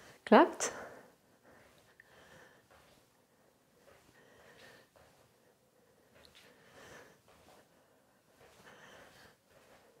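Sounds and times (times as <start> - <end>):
faint soft breaths: 0.0 - 10.0.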